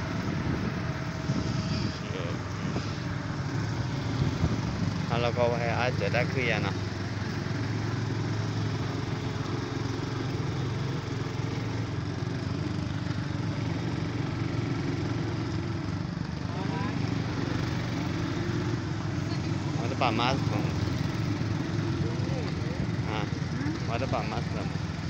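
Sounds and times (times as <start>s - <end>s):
motorcycle engine running: 0.0s - 25.0s
other motorcycle engines nearby: 0.0s - 25.0s.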